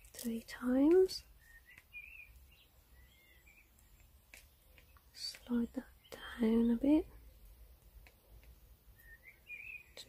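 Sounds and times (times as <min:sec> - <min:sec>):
faint high chirping: 0:00.0 - 0:10.0.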